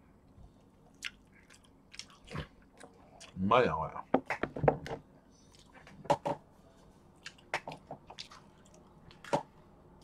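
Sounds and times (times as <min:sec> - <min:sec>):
person chewing food: 0:00.6 - 0:03.4, 0:07.2 - 0:09.5.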